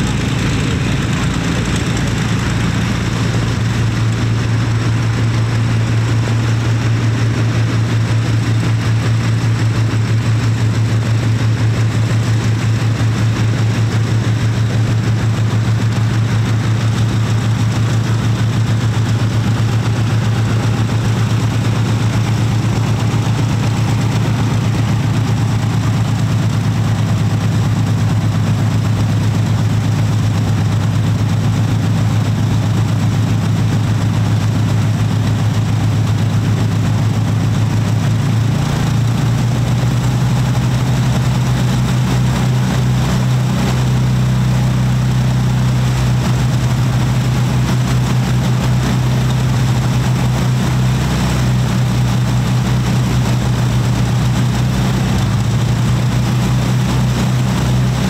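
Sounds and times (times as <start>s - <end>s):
propeller aircraft engines idling: 0.0s - 58.0s.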